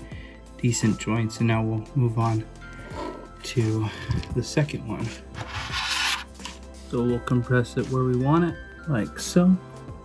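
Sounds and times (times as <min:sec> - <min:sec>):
background music: 0:00.0 - 0:10.0
battery scraping on metal plate: 0:05.4 - 0:06.6.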